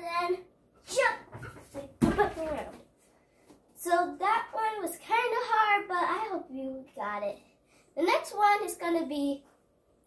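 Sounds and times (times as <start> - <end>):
child landing on floor thump: 2.0 - 2.7.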